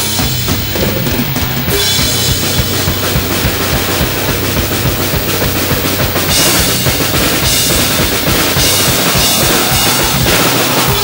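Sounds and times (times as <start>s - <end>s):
cymbals ringing: 0.0s - 11.0s
heavy metal drum kit: 0.0s - 11.0s
rapid bass drum strokes: 0.0s - 11.0s.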